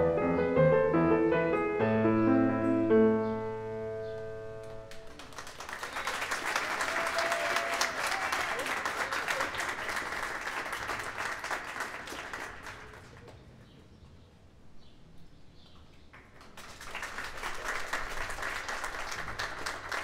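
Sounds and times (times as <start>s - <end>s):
piano chord ringing: 0.0s - 5.0s
audience applauding: 4.6s - 13.5s, 16.2s - 20.0s.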